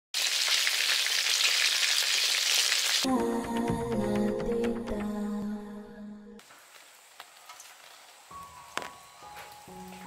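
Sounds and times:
food deep-frying in oil: 0.2s - 3.0s
music: 3.0s - 6.4s, 8.2s - 10.0s.

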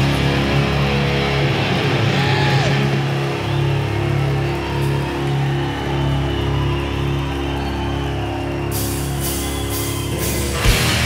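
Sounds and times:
live symphonic metal band: 0.0s - 11.0s.

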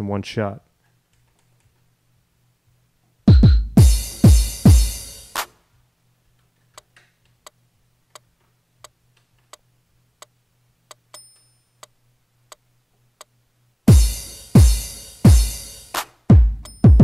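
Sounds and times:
low electrical hum: 0.0s - 16.3s
drum hit: 3.3s - 5.1s, 13.9s - 15.7s
metronome clicking: 10.2s - 12.6s.

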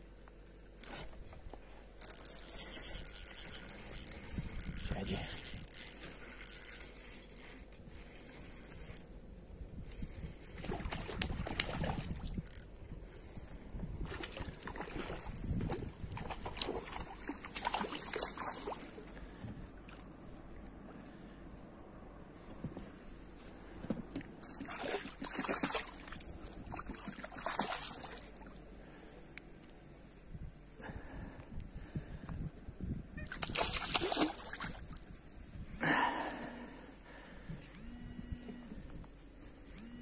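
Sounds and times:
fishing reel buzzing: 2.0s - 9.0s, 12.4s - 12.7s.

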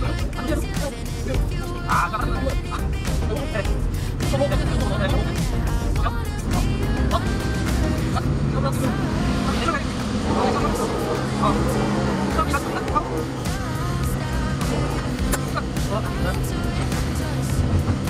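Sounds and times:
background music with voice: 0.0s - 18.0s
heavy machinery engine rumble: 0.0s - 18.0s.

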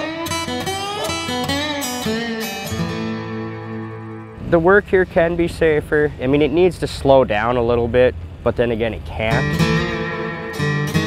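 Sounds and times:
acoustic guitar picking: 0.0s - 6.8s, 9.2s - 11.0s.

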